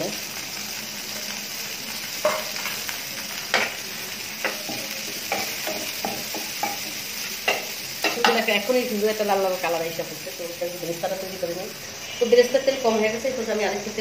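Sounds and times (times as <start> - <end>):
onions sizzling in a frying pan: 0.0 - 14.0
spatula scraping and knocking pan: 4.4 - 8.5.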